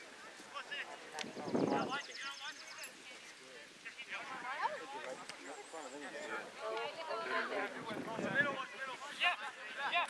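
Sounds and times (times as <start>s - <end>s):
voices talking outdoors: 0.0s - 10.0s.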